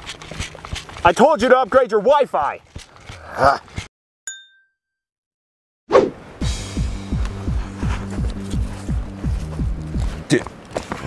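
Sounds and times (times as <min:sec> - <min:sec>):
bright metallic ding: 0:04.3 - 0:04.8.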